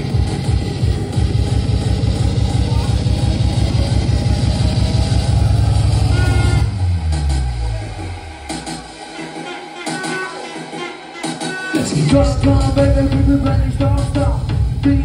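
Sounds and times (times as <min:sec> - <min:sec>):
hardcore dance music: 0:00.0 - 0:15.0
fast kick drum beat: 0:11.7 - 0:15.0.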